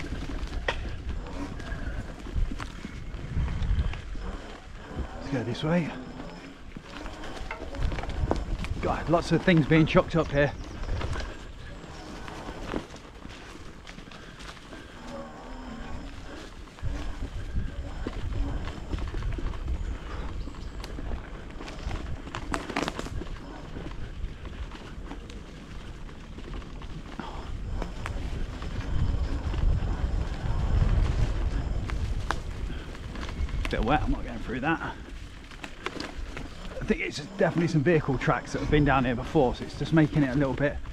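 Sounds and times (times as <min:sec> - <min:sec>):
electric bike rumbling on trail: 0:00.0 - 0:40.9
wind buffeting microphone: 0:00.0 - 0:40.9.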